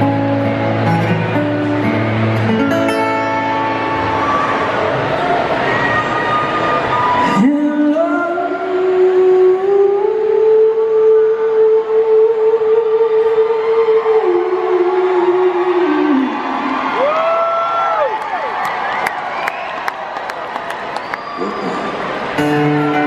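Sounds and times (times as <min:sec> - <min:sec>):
concert crowd cheering: 0:00.0 - 0:09.0, 0:11.9 - 0:23.0
crowd whooping: 0:00.8 - 0:07.6, 0:12.6 - 0:23.0.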